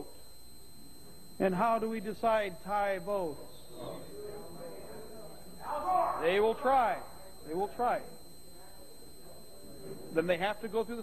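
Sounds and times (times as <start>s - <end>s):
voices murmuring in a hall: 0.0s - 11.0s.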